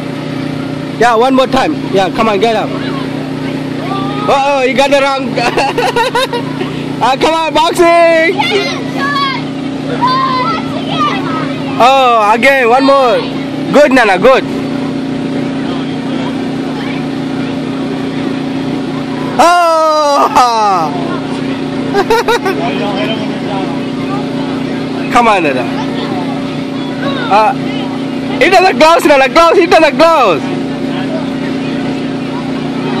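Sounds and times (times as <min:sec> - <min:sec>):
electric air blower humming: 0:00.0 - 0:33.0.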